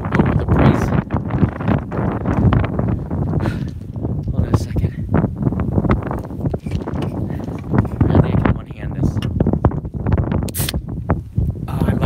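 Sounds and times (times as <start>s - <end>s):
wind buffeting microphone: 0.0s - 12.0s
beer can opening hiss: 10.5s - 10.8s.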